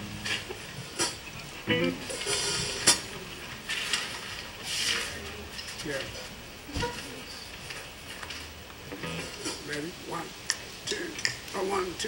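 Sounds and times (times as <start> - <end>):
short pitched sound: 8.9 - 9.4.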